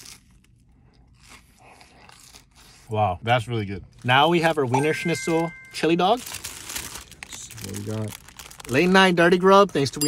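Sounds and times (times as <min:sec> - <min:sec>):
chewing crispy food crunches: 0:00.0 - 0:02.8, 0:06.1 - 0:09.2.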